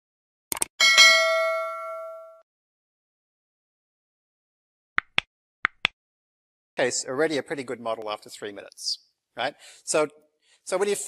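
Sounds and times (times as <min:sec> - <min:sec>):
notification bell chime: 0:00.8 - 0:02.4.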